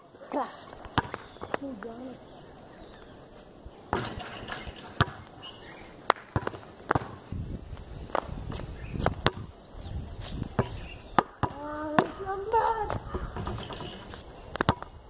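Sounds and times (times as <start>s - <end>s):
basketball bouncing on concrete: 0.8s - 1.9s, 3.9s - 5.4s, 6.0s - 7.3s, 8.1s - 9.5s, 10.5s - 15.0s
basketball hitting backboard and rim: 1.0s - 1.2s, 3.9s - 5.2s, 6.1s - 7.2s, 9.1s - 9.5s, 10.6s - 12.2s, 12.9s - 14.0s.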